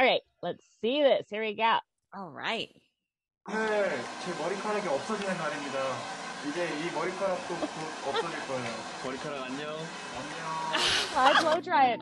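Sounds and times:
hair dryer blowing: 0:03.5 - 0:11.6.

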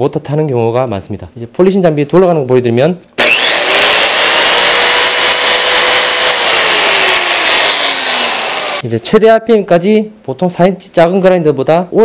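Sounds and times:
electric polisher motor whine: 0:03.2 - 0:08.8.

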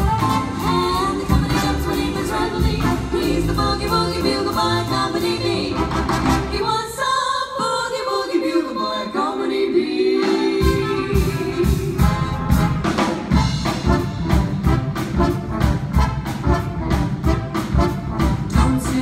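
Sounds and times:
swing band playing: 0:00.0 - 0:06.9, 0:09.9 - 0:19.0.

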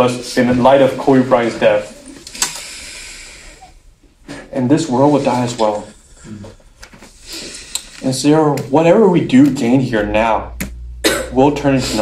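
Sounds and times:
breath hissing: 0:01.9 - 0:04.4, 0:05.0 - 0:08.0.

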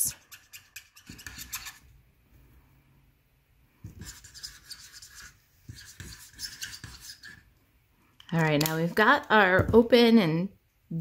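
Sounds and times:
marker tip scratching on card: 0:00.1 - 0:01.8, 0:04.0 - 0:07.4.

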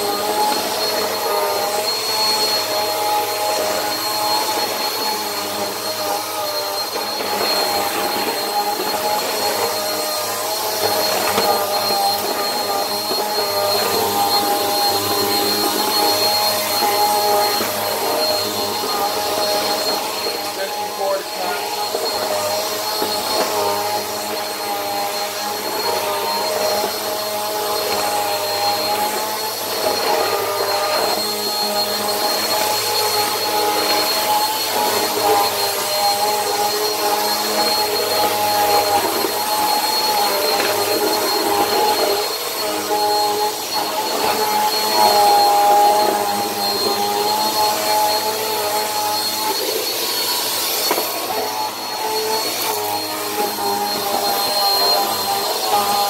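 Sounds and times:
vacuum cleaner motor whine: 0:00.0 - 0:56.0.

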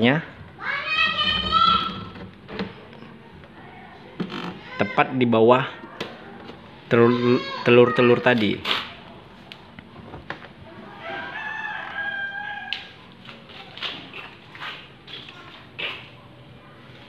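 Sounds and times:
rooster crowing: 0:10.8 - 0:13.0.

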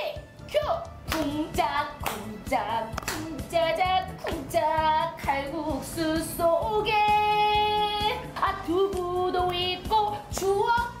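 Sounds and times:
backing track with steady beat: 0:00.0 - 0:11.0
woman singing: 0:00.0 - 0:11.0.

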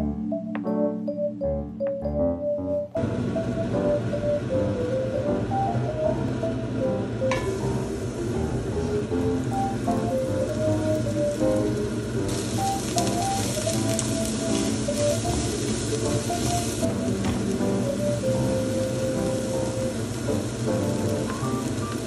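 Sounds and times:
background piano music: 0:00.0 - 0:22.0
garlic sizzling in oil: 0:03.1 - 0:22.0.

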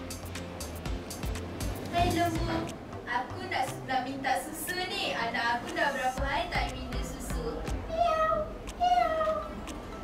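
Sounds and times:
person imitating cat meows: 0:07.9 - 0:09.6.

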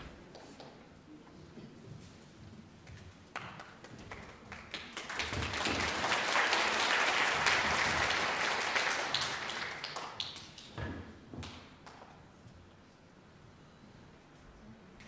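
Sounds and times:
audience applause: 0:03.4 - 0:10.6.

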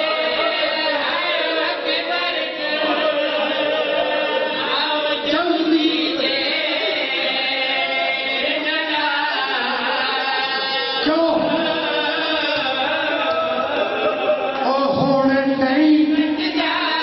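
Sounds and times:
men chanting a lament: 0:00.0 - 0:17.0.

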